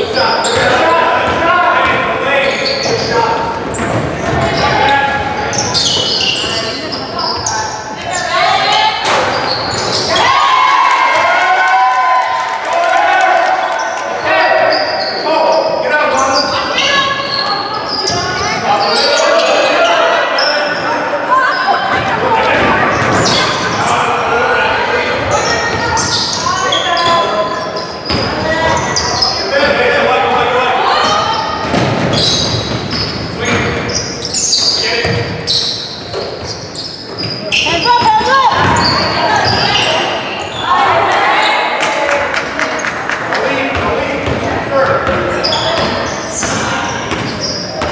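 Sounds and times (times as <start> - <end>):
people calling out and talking: 0.0 - 47.9.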